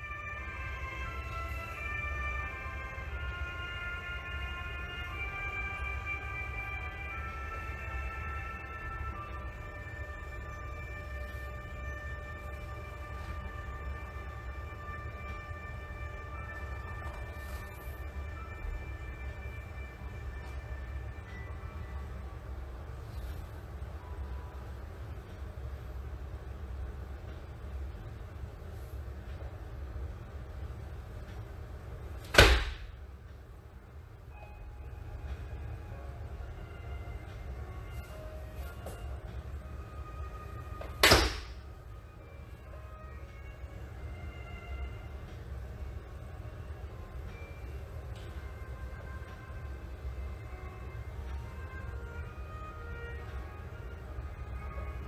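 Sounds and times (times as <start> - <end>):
faint long-held high tones: 0.0 - 25.6, 34.2 - 55.0
quiet background music: 0.0 - 55.0
steady low rumble: 0.0 - 55.0.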